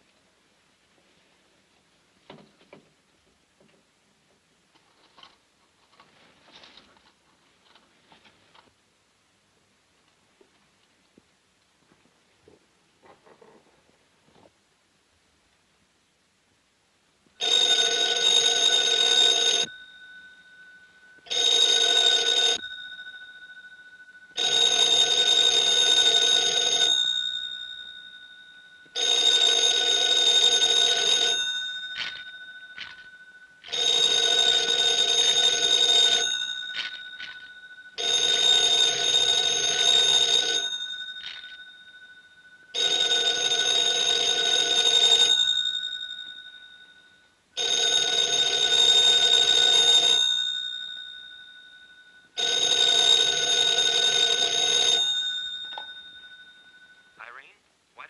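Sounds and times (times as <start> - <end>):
telephone bell ringing: 17.4 - 57.5.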